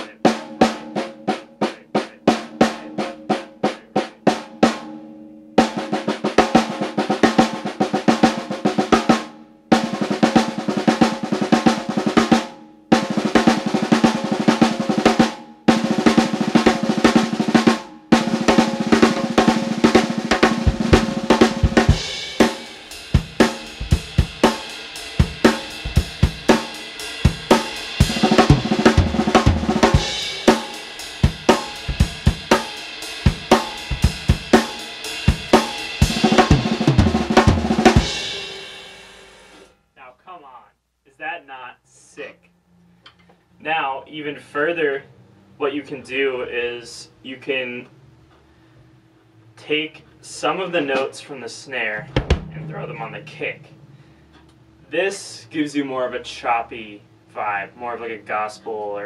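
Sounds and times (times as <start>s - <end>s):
cymbals: 8.2s - 39.7s, 51.5s - 55.9s
snare drum roll: 13.0s - 39.7s, 51.8s - 53.8s
bass drum: 18.2s - 26.7s, 27.3s - 30.6s, 31.2s - 32.6s, 33.3s - 38.4s, 52.0s - 54.2s.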